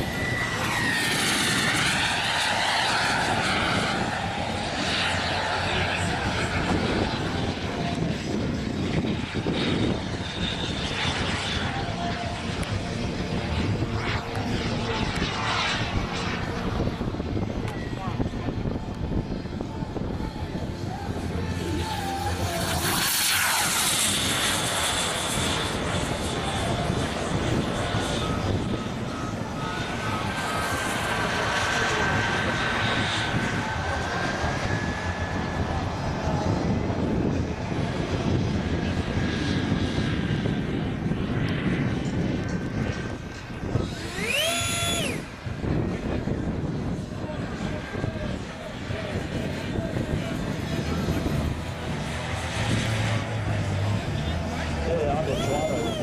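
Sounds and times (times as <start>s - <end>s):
high whistle rising and falling: 0.0s - 1.8s, 43.8s - 45.4s, 54.9s - 56.0s
model jet turbine whine: 0.0s - 56.0s.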